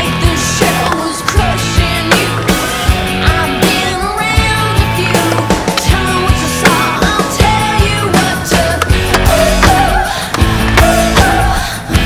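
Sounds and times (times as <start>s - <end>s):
sustained guitar: 0.0s - 12.0s
vocals: 0.0s - 12.0s
steady drum beat: 4.4s - 11.6s.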